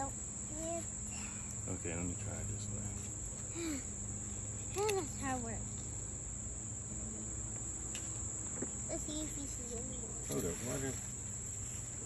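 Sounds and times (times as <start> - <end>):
insects chorus: 0.0 - 12.0
low steady hum: 0.0 - 12.0.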